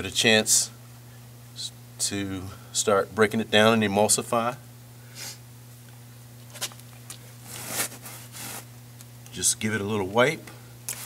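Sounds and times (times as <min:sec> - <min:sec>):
hand swishing across wet tile: 0:07.5 - 0:08.7.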